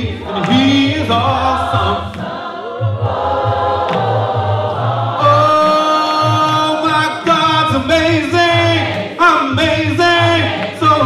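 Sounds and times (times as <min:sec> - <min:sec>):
man singing into microphone: 0:00.0 - 0:02.1, 0:05.2 - 0:11.0
choir singing gospel: 0:00.0 - 0:11.0.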